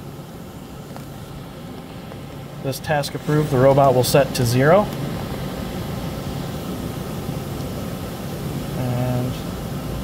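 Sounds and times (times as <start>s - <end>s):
shop machinery humming: 0.0s - 10.0s.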